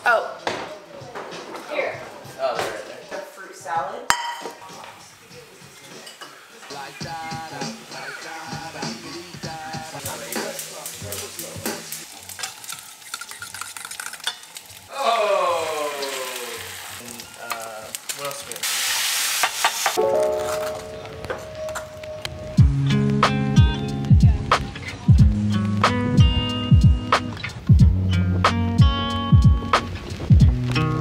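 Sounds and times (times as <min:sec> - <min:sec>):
food sizzling in pans: 0:02.9 - 0:31.0
spatula clinking against pans: 0:05.9 - 0:06.4.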